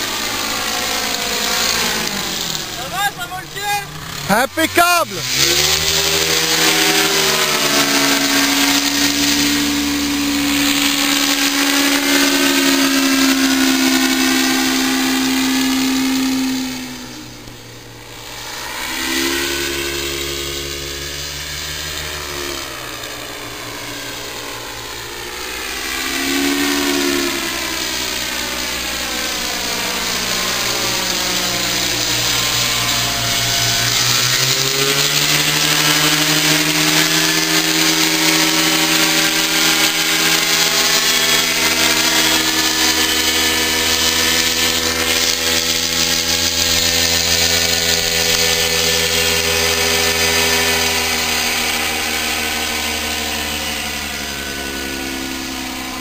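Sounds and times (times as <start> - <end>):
paramotor engine droning overhead: 0.0 - 56.0.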